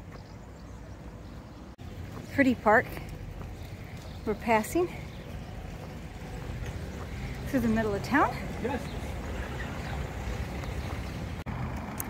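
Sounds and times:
footsteps on cobbled paving: 0.0s - 11.8s.

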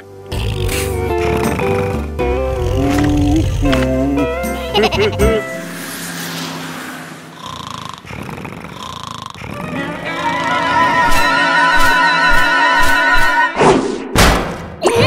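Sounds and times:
background music: 0.0s - 6.9s, 9.4s - 13.7s
cartoon voices laughing: 4.6s - 5.4s.

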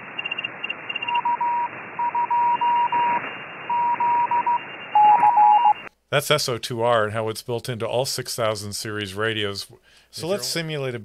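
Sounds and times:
radio receiver hiss: 0.0s - 4.0s
morse code beeps: 0.2s - 5.9s.

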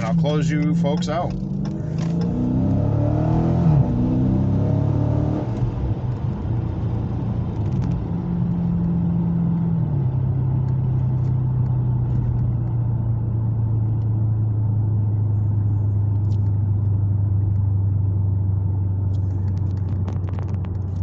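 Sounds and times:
tyre and road noise: 0.0s - 13.1s, 15.2s - 21.0s
car engine cruising: 0.0s - 21.0s.

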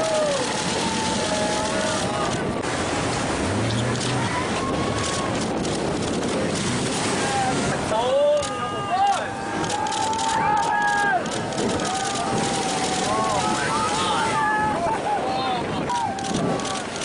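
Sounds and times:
people whooping and yelling: 0.0s - 2.6s, 4.2s - 5.5s, 7.1s - 17.0s
surf: 0.0s - 17.0s
wind: 0.0s - 17.0s.

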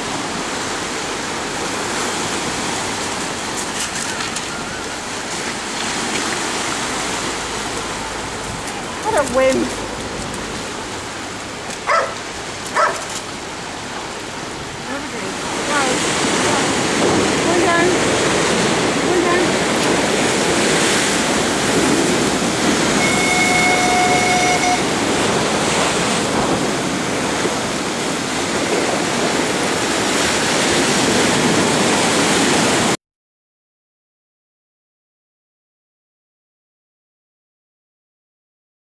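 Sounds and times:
sea waves breaking on stone wall: 0.0s - 33.0s
wind on microphone: 14.6s - 33.0s.

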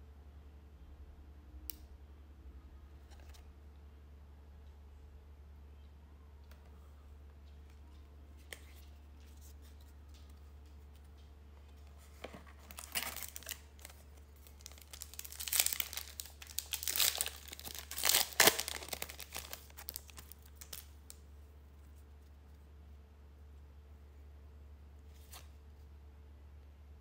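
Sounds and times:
foil wrapper tearing and crinkling: 12.6s - 21.0s.

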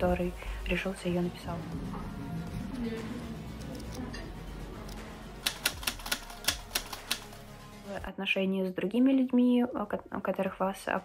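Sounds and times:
soft background music: 0.0s - 11.0s
rapid sharp clicks: 4.8s - 7.5s.

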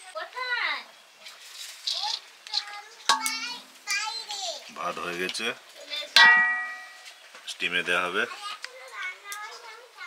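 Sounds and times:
children talking and playing: 0.0s - 10.0s.

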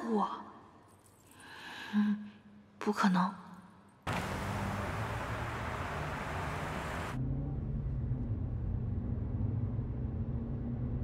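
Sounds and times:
tyre and road noise: 4.1s - 7.2s
car engine hum: 4.1s - 10.6s.

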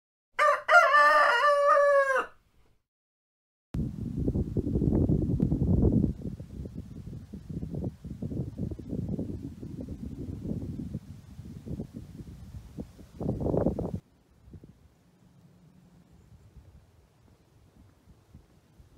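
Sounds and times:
rooster crowing: 0.4s - 2.4s
wind rumble on microphone: 3.8s - 15.1s, 16.0s - 18.9s.

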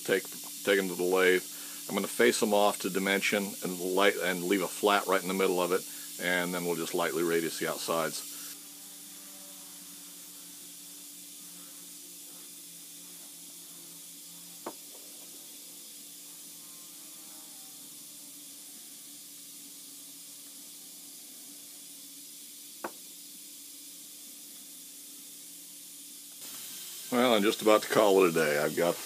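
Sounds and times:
faint steady hum and hiss: 0.0s - 29.0s.

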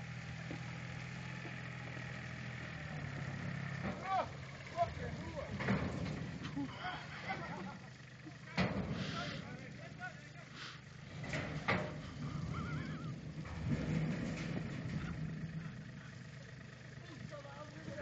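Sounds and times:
tractor engine running: 0.0s - 18.0s.

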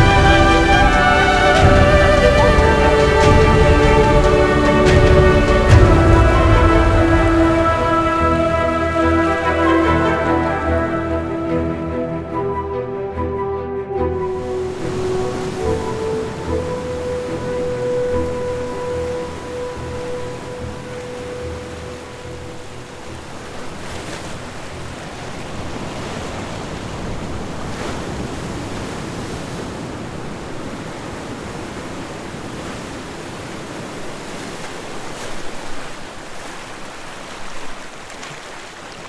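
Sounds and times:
held musical tone: 0.0s - 23.1s
ocean waves: 0.0s - 39.0s.

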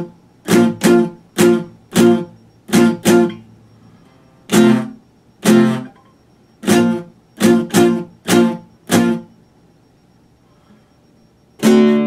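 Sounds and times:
classical guitar chords strummed: 0.0s - 3.6s, 4.2s - 6.0s, 6.6s - 9.3s, 11.6s - 12.0s.

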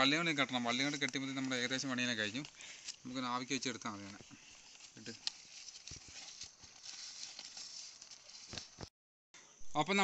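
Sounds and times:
banana leaf rustling and crackling: 0.0s - 8.9s.

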